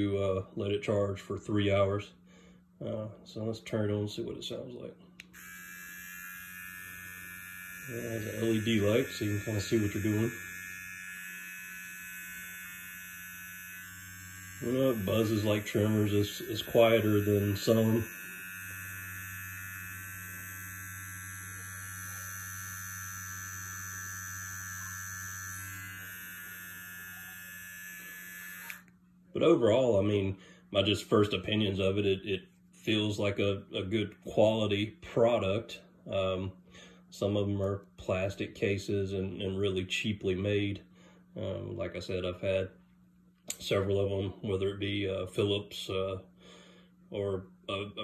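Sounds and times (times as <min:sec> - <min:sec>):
electric body trimmer buzzing: 0:05.2 - 0:29.0.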